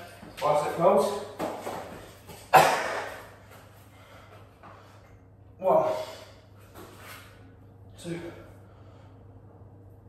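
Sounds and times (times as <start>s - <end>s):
low steady hum: 0.0s - 10.0s
man breathing hard: 3.8s - 6.6s, 8.0s - 9.6s.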